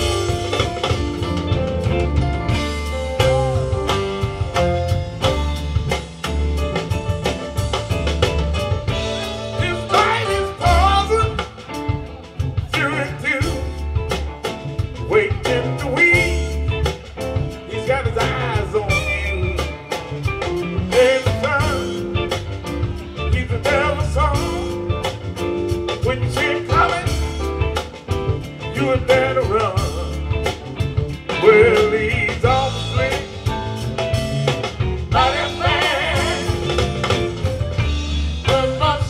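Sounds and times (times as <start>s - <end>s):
blues band playing: 0.0s - 39.0s.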